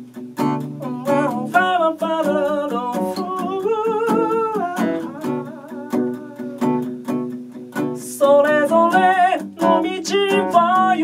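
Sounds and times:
strummed acoustic guitar: 0.0s - 11.0s
man singing: 0.6s - 7.0s, 8.0s - 11.0s.

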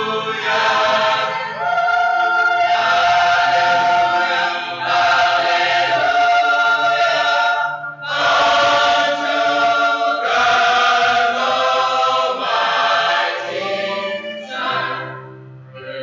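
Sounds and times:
choir singing in harmony: 0.0s - 16.0s.

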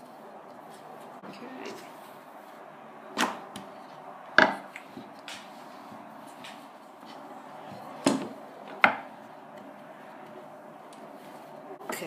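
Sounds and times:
rolling pin rolling dough: 0.0s - 12.0s
sharp knocks: 8.0s - 9.1s.

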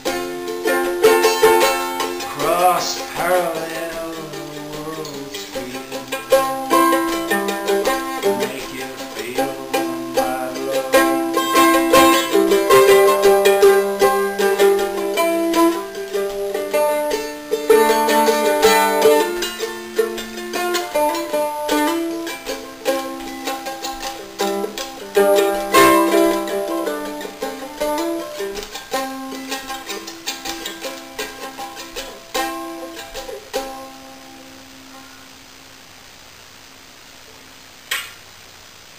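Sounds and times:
mandolin playing: 0.0s - 35.2s.

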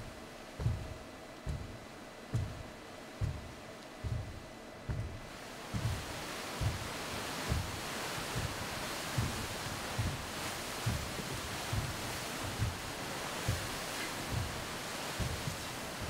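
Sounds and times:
soft low pulse: 0.0s - 15.7s
steady rushing noise: 0.0s - 16.0s.

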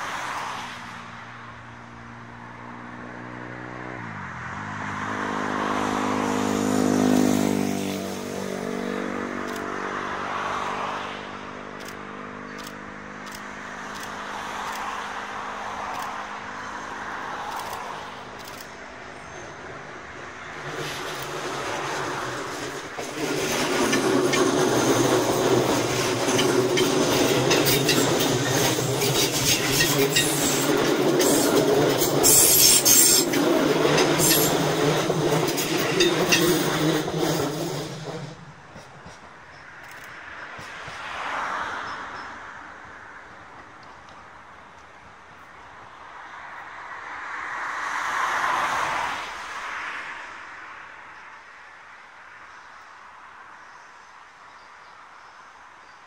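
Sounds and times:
train running noise: 6.2s - 9.8s, 11.8s - 45.8s
wheels clattering on rails: 12.6s - 42.8s.

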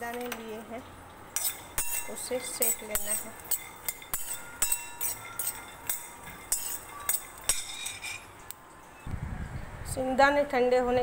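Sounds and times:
peanuts clinking in steel bowl: 1.4s - 8.3s.

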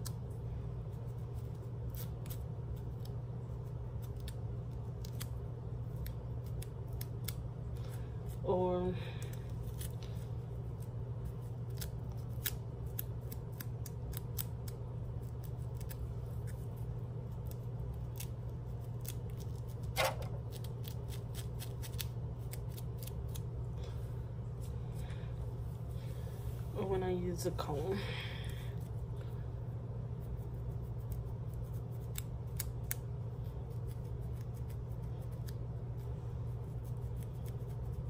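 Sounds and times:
comb scratching scalp: 0.0s - 7.4s, 30.0s - 38.0s.

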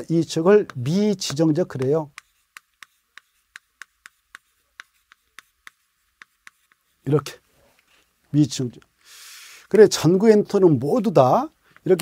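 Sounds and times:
chalk writing on a chalkboard: 0.4s - 7.4s.

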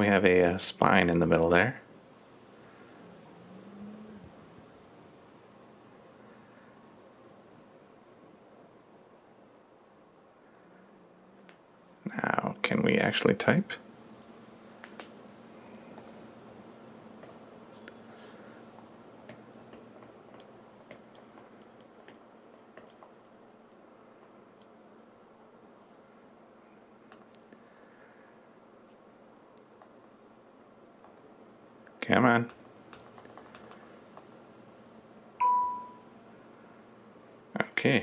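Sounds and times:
electronic alert chime: 35.4s - 36.0s.

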